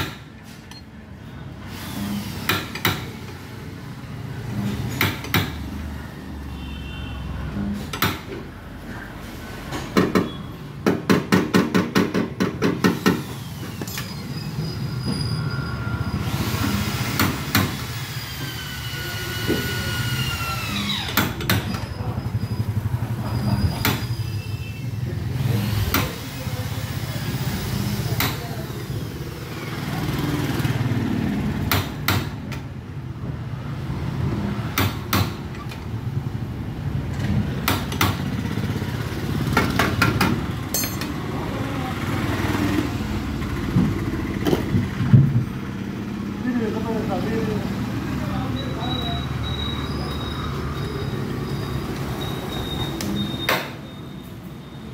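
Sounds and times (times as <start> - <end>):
slide hammer clanking on metal: 39.6 - 41.2.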